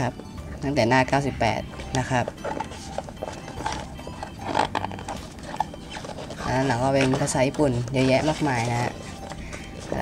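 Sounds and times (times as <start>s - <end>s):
book pages turning: 1.9s - 10.0s.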